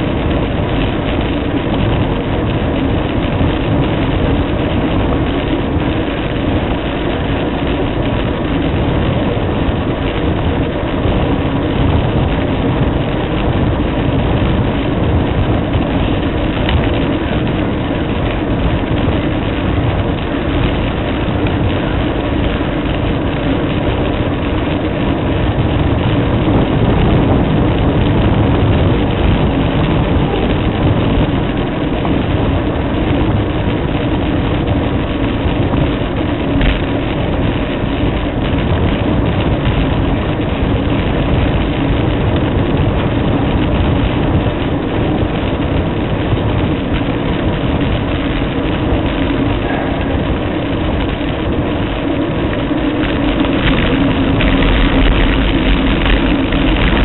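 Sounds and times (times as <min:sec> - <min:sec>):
bicycle rolling on pavement: 0:00.0 - 0:57.0
wind noise: 0:00.0 - 0:57.0.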